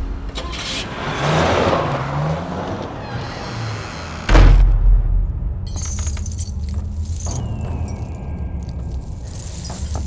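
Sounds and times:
glass bead curtain clinking: 0:05.7 - 0:10.0.

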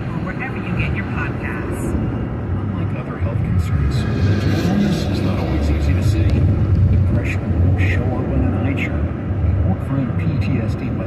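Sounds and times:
road and tyre rumble: 0:00.0 - 0:11.0.

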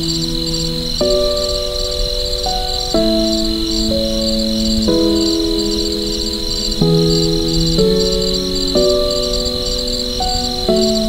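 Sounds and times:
crickets chirping: 0:00.0 - 0:11.0
soft piano chords: 0:00.0 - 0:11.0.

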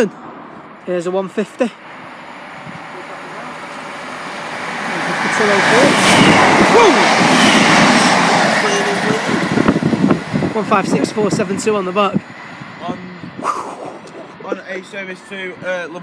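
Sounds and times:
diesel train passing: 0:00.0 - 0:16.0.

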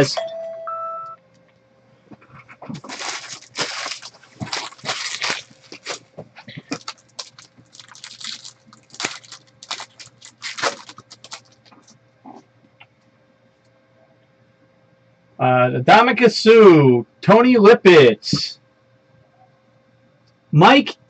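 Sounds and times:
foil wrappers crinkling: 0:02.4 - 0:12.0.

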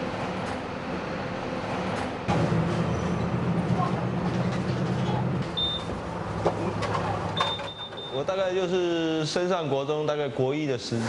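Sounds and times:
bus engine drone: 0:00.0 - 0:07.5
high electronic beeps: 0:05.6 - 0:05.9.

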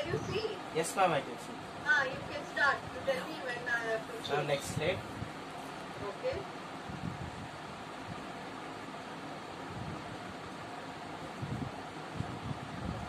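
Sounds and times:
room noise hiss: 0:00.0 - 0:13.0.

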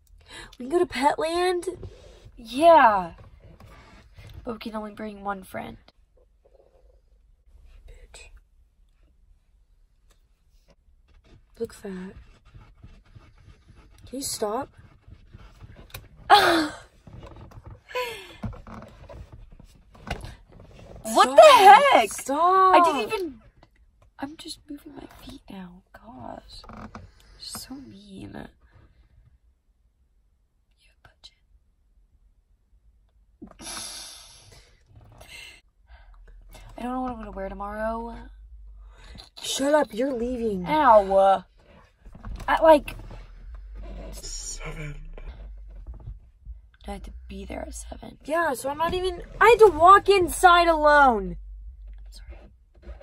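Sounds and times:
car cabin hum: 0:21.1 - 0:23.3, 0:36.1 - 0:53.0
faint low rumble: 0:34.6 - 0:53.0.

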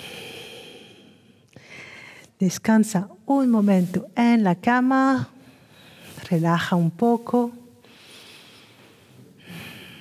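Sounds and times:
woman breathing softly: 0:00.0 - 0:02.4, 0:07.9 - 0:10.0.

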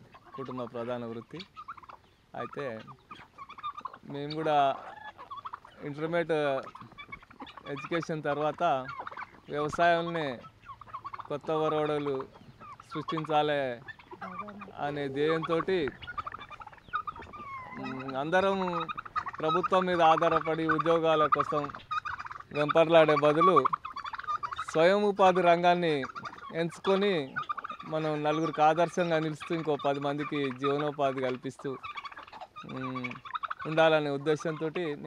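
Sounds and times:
turkeys chirping: 0:00.0 - 0:35.0
turkey whistle-like call: 0:06.6 - 0:24.8, 0:26.0 - 0:34.7.

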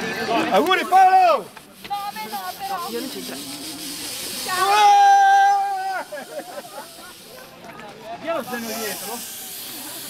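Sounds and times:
beer hissing from shaken bottle: 0:00.8 - 0:10.0
high-pitched scream: 0:04.4 - 0:06.1.

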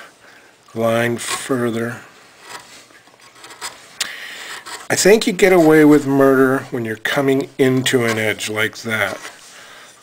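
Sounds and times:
chisel scraping wood: 0:01.2 - 0:01.6, 0:02.4 - 0:05.9
chisel cutting wood: 0:04.4 - 0:04.9.

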